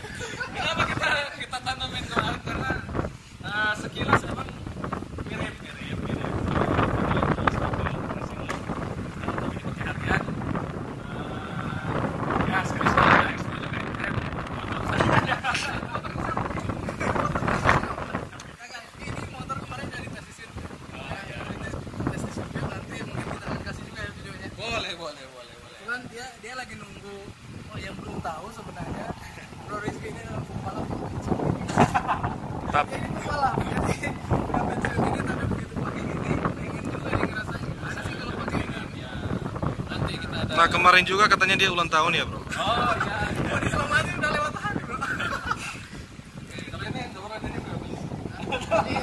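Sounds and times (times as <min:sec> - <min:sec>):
men laughing: 0:00.0 - 0:01.5, 0:14.7 - 0:18.2, 0:28.9 - 0:30.5, 0:31.4 - 0:36.0, 0:42.4 - 0:46.4, 0:48.1 - 0:49.0
men laughing and talking: 0:00.0 - 0:49.0
wind buffeting microphone: 0:00.0 - 0:49.0.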